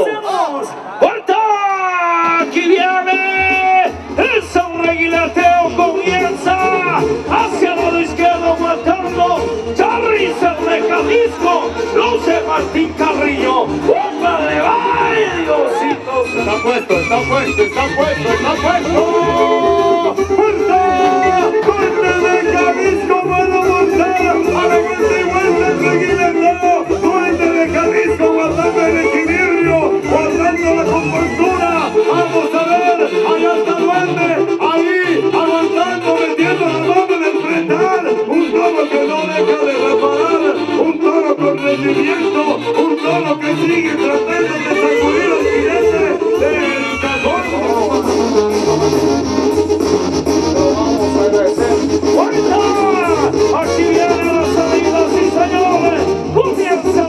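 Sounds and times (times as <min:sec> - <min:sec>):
brass band music: 0:00.0 - 0:57.0.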